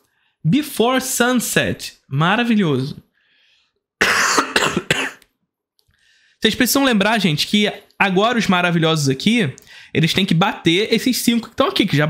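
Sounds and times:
man coughing: 0:04.0 - 0:05.2.

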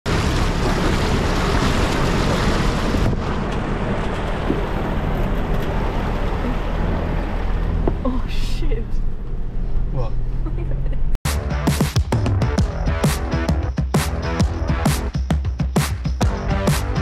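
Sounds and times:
engine rumbling: 0:00.0 - 0:17.0
tyre splashing through muddy water: 0:00.1 - 0:07.0
wind buffeting microphone: 0:00.6 - 0:06.4.

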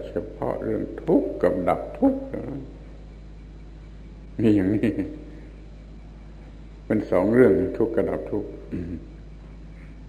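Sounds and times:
man speaking: 0:00.0 - 0:02.9, 0:04.4 - 0:05.3, 0:06.9 - 0:09.2
low hum and faint hiss: 0:00.0 - 0:10.0.

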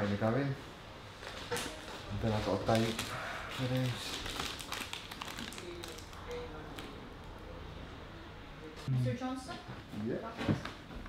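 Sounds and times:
plastic packets crinkling: 0:01.2 - 0:07.0.

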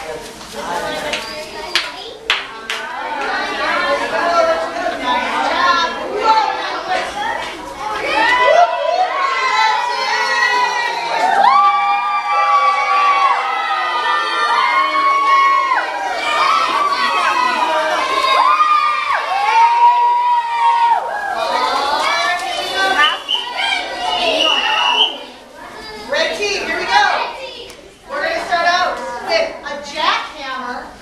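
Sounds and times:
children cheering and screaming: 0:07.9 - 0:26.0.

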